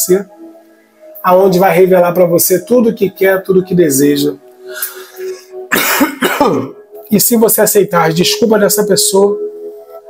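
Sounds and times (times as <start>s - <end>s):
man clearing his throat: 5.7s - 6.8s.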